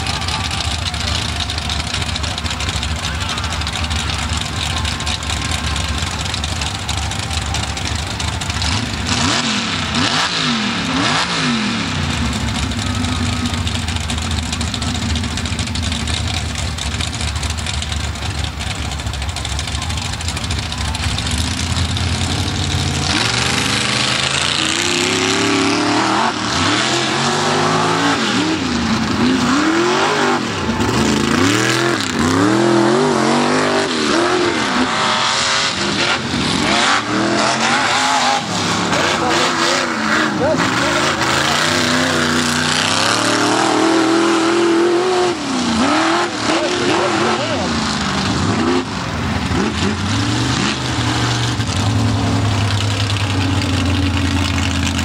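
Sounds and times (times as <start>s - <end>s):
truck engines revving: 0.0s - 55.0s.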